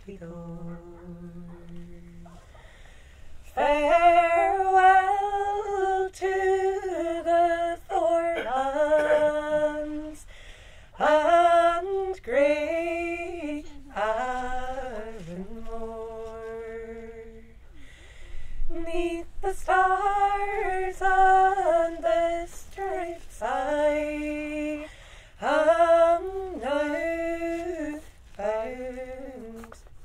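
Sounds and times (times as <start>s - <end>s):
women singing unaccompanied: 0.0s - 2.7s, 3.4s - 10.3s, 10.9s - 17.6s, 18.6s - 30.0s
singers breathing: 2.4s - 3.5s, 10.2s - 11.0s, 17.6s - 18.7s, 24.8s - 25.4s.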